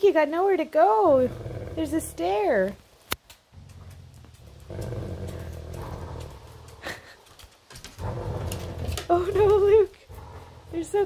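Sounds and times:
dog growling: 1.0 - 2.8, 3.5 - 7.2, 7.9 - 11.0.

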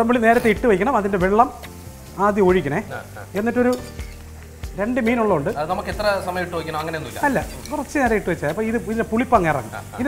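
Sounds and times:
hot oil sizzling: 0.0 - 10.0
man talking: 2.2 - 3.8, 4.8 - 10.0.

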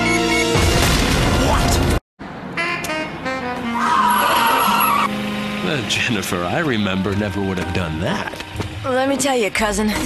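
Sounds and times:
background music: 2.6 - 10.0
car tyres screeching: 3.7 - 5.2.

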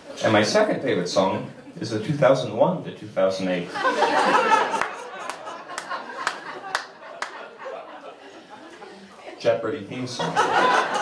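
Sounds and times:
audience laughing: 3.6 - 11.0.

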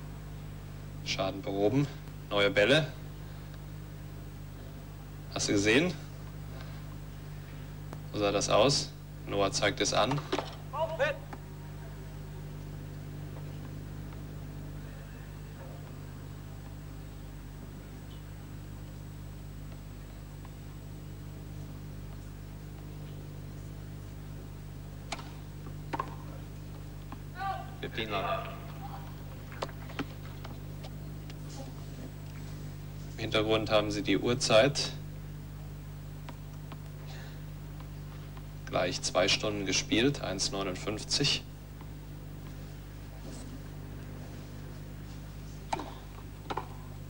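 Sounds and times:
tennis balls struck by rackets: 25.1 - 26.4, 45.6 - 46.9
tennis racket hitting ball: 45.7 - 46.8.

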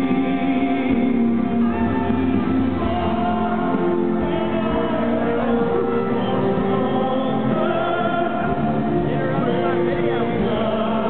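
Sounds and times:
choir-like voices singing: 0.0 - 11.0
string accompaniment: 0.0 - 11.0.

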